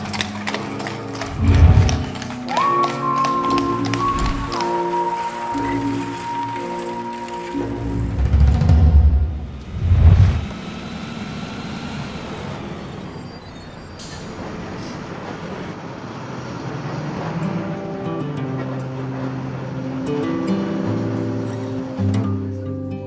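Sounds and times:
background music: 0.0s - 10.4s
road traffic and bus noise: 0.0s - 23.0s.

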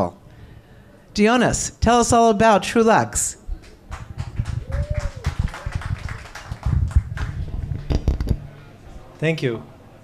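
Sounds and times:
microphone handling thumps and rustles: 6.7s - 8.4s.

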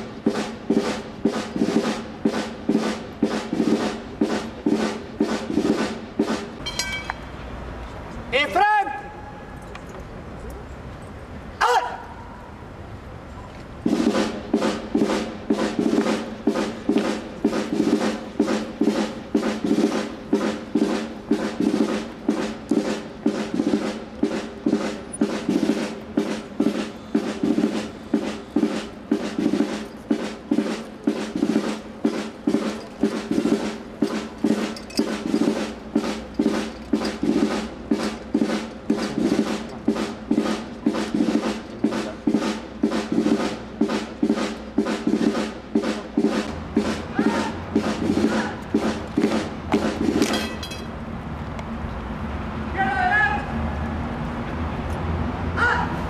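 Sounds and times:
snare drum marching beat: 0.0s - 6.7s, 13.8s - 50.3s
military march music: 0.0s - 9.4s, 13.4s - 51.0s.

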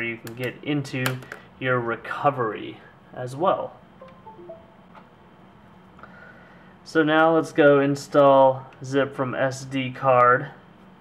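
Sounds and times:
computer chime descending tones: 4.0s - 4.9s.

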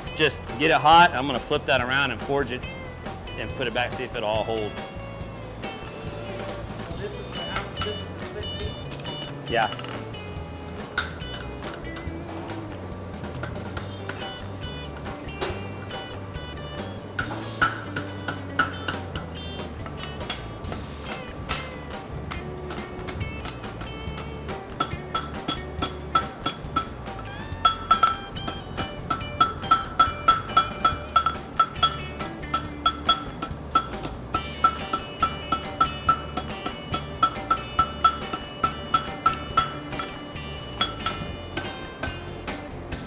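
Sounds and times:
background music: 0.0s - 43.0s
hammer striking anvil: 17.2s - 19.3s, 24.2s - 27.0s, 27.6s - 40.2s, 40.8s - 42.2s.

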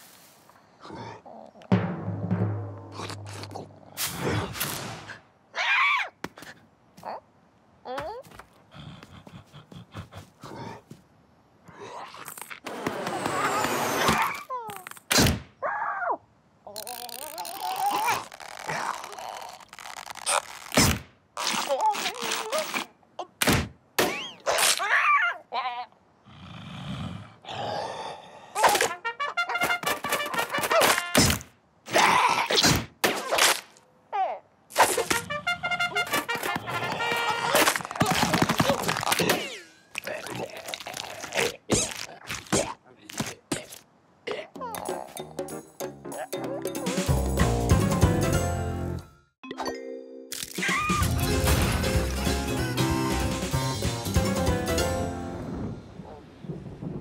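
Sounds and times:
cartoon character grunts and groans: 7.0s - 8.3s, 14.2s - 14.9s, 15.6s - 19.8s, 31.9s - 32.6s, 34.1s - 34.5s, 36.7s - 45.3s.

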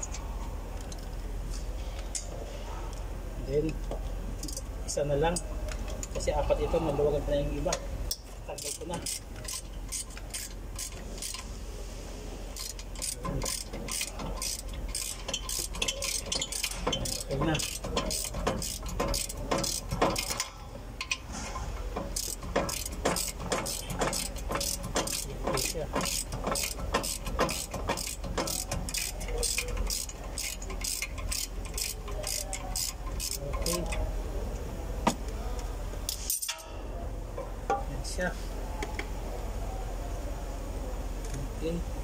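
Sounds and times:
metal handling noises: 0.0s - 6.9s, 7.6s - 11.6s, 12.5s - 34.2s, 35.0s - 38.2s
ratchet wrench clicking: 8.1s - 11.5s, 12.5s - 21.2s, 22.0s - 34.1s, 36.1s - 36.7s.

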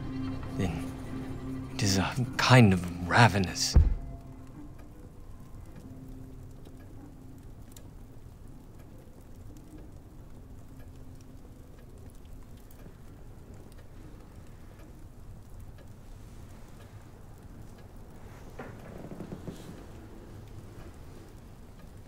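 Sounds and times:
faint ticks and crackles: 0.0s - 22.0s.

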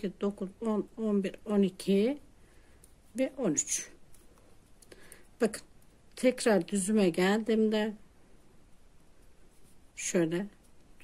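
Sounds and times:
knitting needles rustling yarn: 0.0s - 11.0s.

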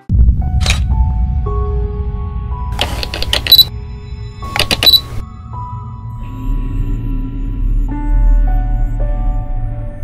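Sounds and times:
low rumbling drone: 0.1s - 4.5s, 5.2s - 10.0s
camera shutter clicks: 2.8s - 3.7s, 4.6s - 5.0s.

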